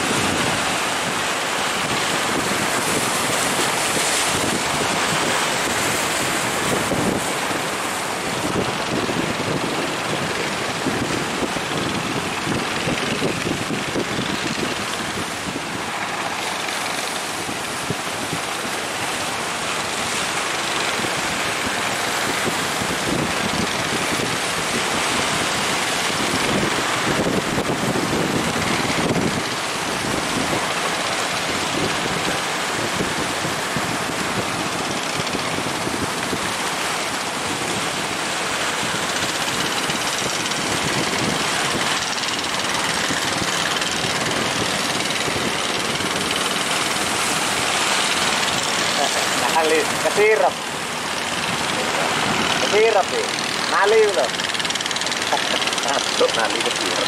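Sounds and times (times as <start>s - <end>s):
boat motors running: 0.0s - 57.0s
rough surf: 0.0s - 57.0s
wind buffeting microphone: 0.0s - 57.0s.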